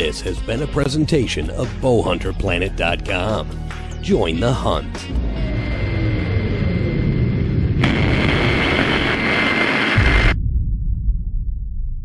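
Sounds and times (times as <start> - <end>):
explosion-like low rumble: 5.1 - 12.0.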